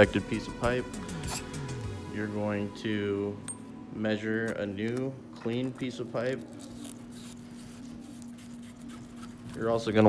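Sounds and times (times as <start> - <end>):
faint steady hum: 0.0 - 10.0
scratchy rubbing noises: 6.0 - 10.0.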